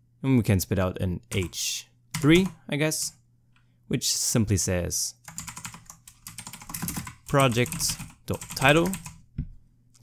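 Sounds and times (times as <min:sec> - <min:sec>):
typing on a computer keyboard: 0:05.3 - 0:09.2.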